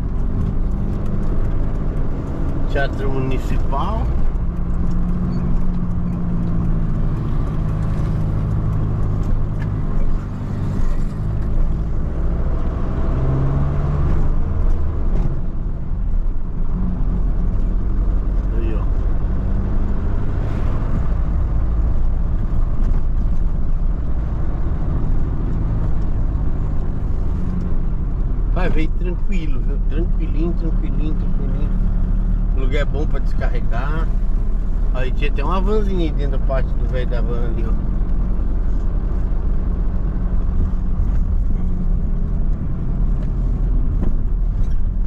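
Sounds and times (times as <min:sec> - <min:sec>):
diesel van engine hum: 0:00.0 - 0:45.0
road noise: 0:00.0 - 0:45.0.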